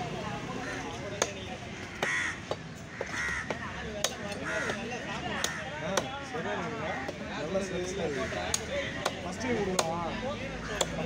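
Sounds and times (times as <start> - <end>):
harsh bird caws: 0.6 - 5.8, 6.8 - 9.3
cleaver chopping on wooden block: 1.1 - 6.2, 8.4 - 10.1, 10.7 - 11.0.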